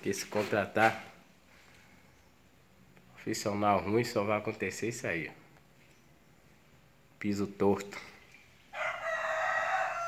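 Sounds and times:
rooster crowing: 8.7 - 10.0.

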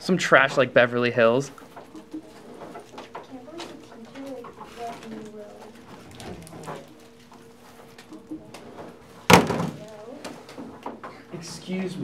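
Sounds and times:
faint voices murmuring: 0.1 - 12.0.

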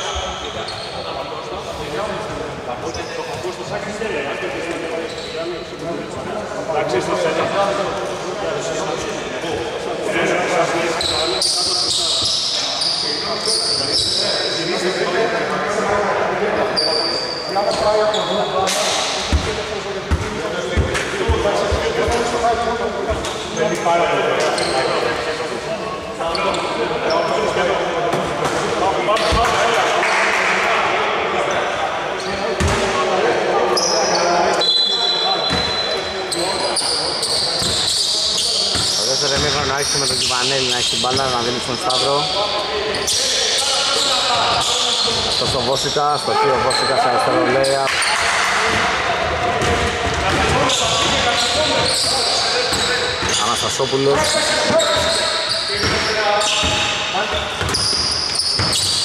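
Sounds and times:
basketball bouncing on wooden court: 49.6 - 51.2, 57.6 - 59.0.

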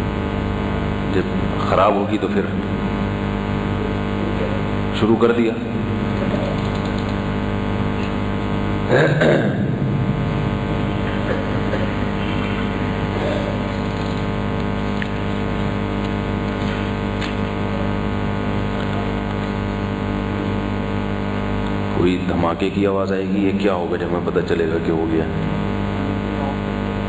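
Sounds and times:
droning low hum: 0.0 - 27.0.

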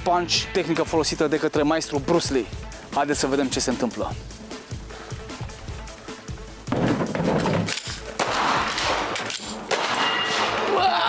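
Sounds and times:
background music: 0.0 - 11.0
pistol gunshots: 6.7 - 10.7.

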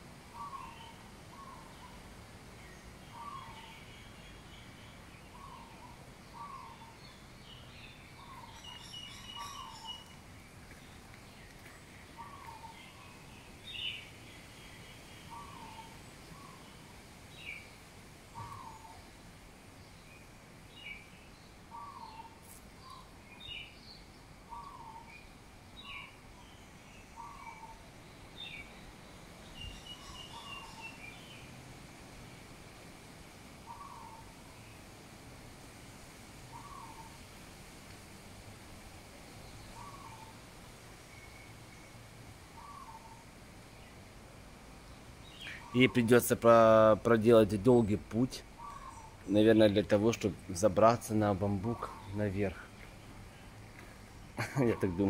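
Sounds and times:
birds high chirps: 0.2 - 32.5, 33.6 - 35.0, 36.4 - 37.8, 39.0 - 44.2, 44.8 - 55.0.

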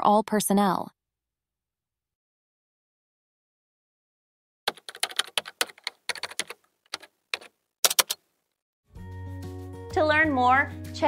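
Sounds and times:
keystroke clicks: 4.7 - 8.2.

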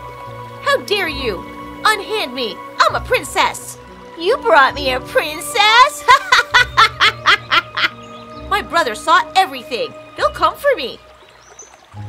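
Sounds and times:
woman laughing: 6.0 - 8.0.

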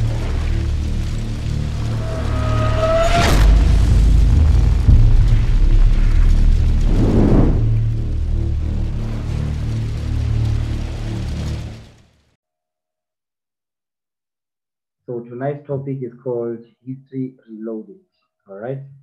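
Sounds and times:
sharp boom: 0.0 - 10.6
swell of noise: 0.0 - 12.0
deep low rumble: 0.0 - 12.1.

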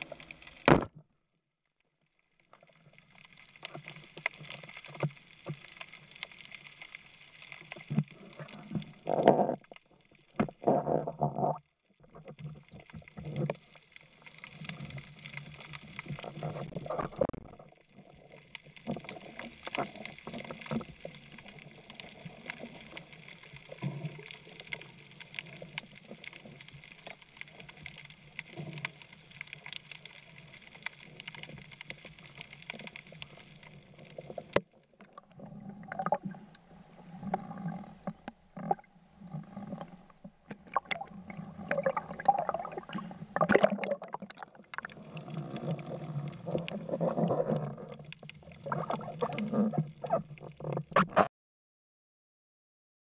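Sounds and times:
muffled water movement: 0.0 - 51.3
knock underwater: 0.7 - 1.0
sharp clicks underwater: 18.5 - 36.6, 37.2 - 51.3.

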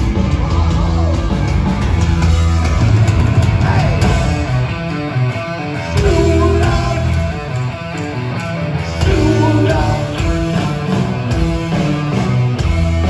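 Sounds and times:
heavy metal band playing live: 0.0 - 13.0.

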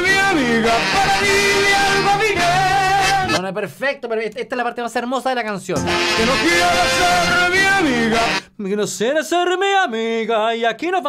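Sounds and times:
man singing long notes: 0.0 - 3.4, 5.8 - 8.5
merengue band playing: 0.0 - 3.4, 5.8 - 8.4.

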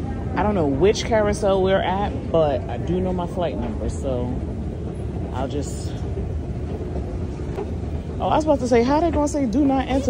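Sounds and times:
escalator rumbling: 0.0 - 10.0.

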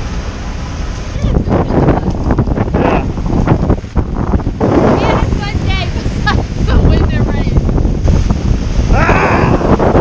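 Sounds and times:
strong wind buffeting microphone: 0.0 - 10.0.

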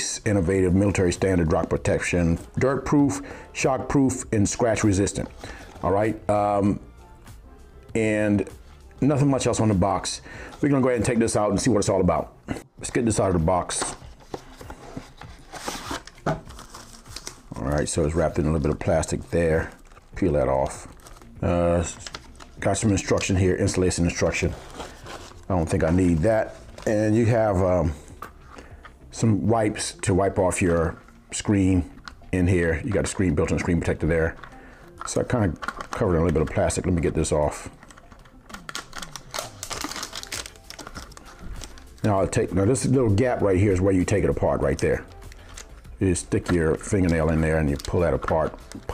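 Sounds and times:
plastic sleeve scraping rustle: 13.7 - 27.7, 32.5 - 48.9
plastic film crinkling: 13.7 - 28.9, 32.0 - 48.9.

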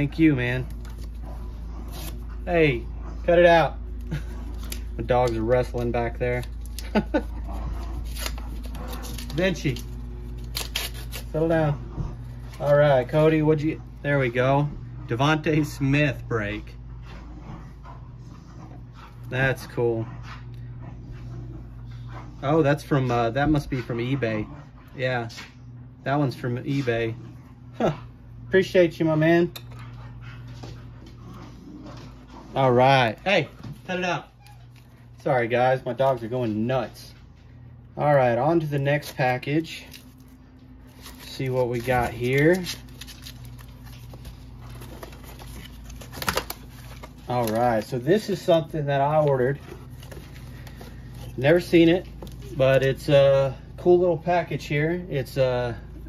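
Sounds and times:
dogs wrestling: 0.0 - 15.4, 16.2 - 28.5, 29.2 - 35.2, 38.5 - 52.8
steady low hum: 0.0 - 56.0
cardboard box and paper rustling: 38.9 - 53.1.

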